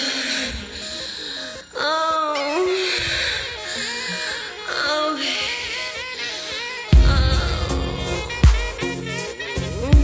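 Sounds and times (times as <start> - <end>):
house music: 6.8 - 10.0
woman moaning and sighing: 7.0 - 8.4.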